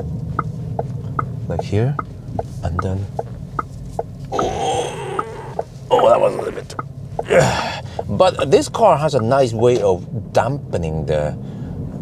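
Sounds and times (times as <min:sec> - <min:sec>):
soft ticks: 0:00.0 - 0:05.7
road and suspension rumble: 0:00.0 - 0:12.0.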